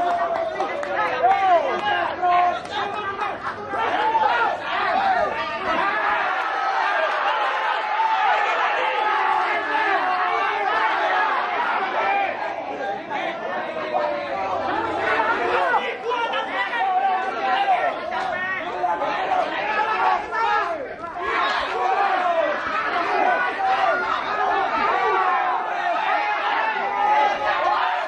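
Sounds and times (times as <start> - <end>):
crowd chattering: 0.0 - 28.0.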